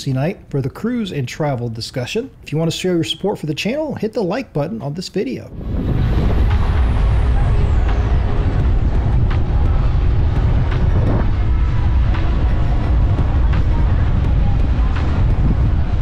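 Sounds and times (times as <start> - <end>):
wind buffeting microphone: 5.5 - 16.0.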